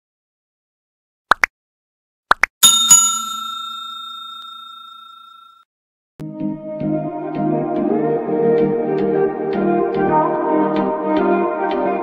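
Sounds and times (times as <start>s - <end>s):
bright bell ringing: 2.6s - 5.6s.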